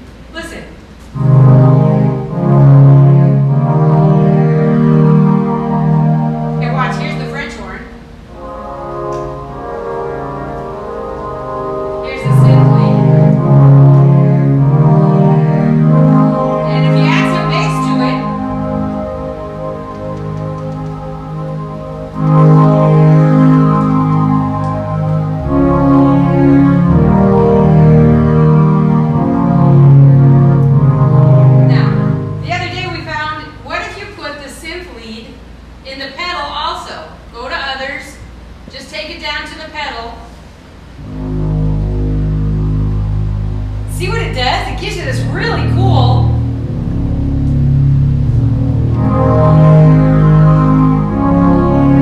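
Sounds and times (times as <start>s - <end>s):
organ playing sustained chords: 1.1s - 34.8s, 40.8s - 52.0s.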